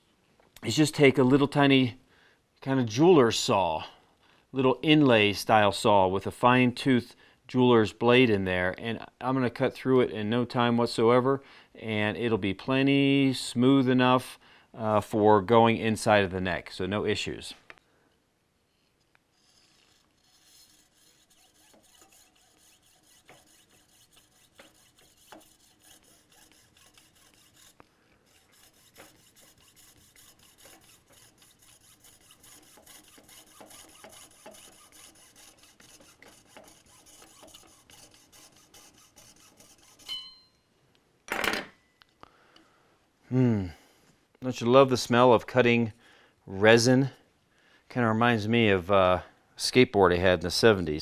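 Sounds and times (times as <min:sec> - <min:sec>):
fine saw cutting rod: 0:19.4 - 0:40.3.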